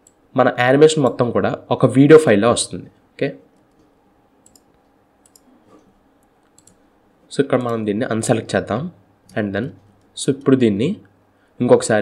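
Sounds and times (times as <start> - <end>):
computer mouse clicks: 3.6 - 6.8.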